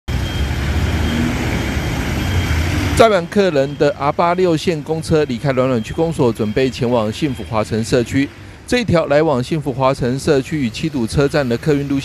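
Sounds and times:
street traffic: 0.0 - 12.0
minibus engine running: 0.1 - 12.0.

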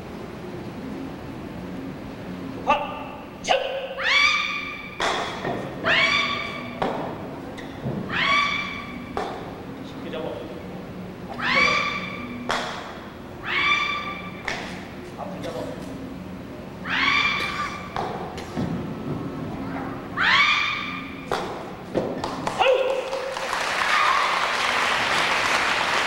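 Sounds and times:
high-pitched yells: 3.5 - 5.0, 5.8 - 6.8, 8.1 - 9.0, 11.3 - 12.3, 13.4 - 14.4, 16.8 - 17.9, 20.1 - 21.2, 23.8 - 24.5.

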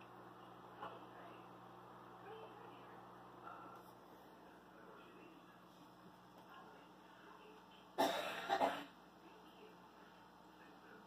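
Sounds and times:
person coughing: 8.0 - 9.0.

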